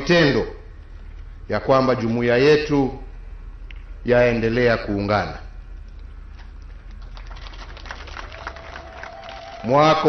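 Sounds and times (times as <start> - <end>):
quiet low hum: 0.0 - 10.0.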